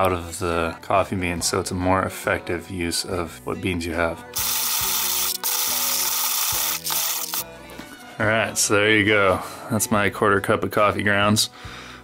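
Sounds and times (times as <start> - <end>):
hand-cranked coffee mill grinding: 4.4 - 7.4.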